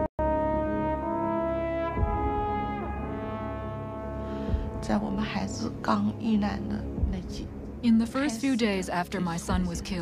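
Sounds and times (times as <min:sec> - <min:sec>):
held horn-like note: 0:00.0 - 0:05.0.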